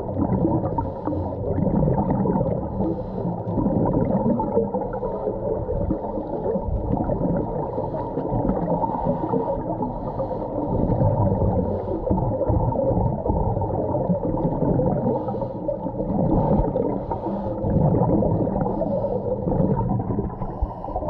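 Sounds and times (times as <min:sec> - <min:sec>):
muffled underwater rumble: 0:00.0 - 0:21.0
underwater gurgling: 0:00.0 - 0:21.0.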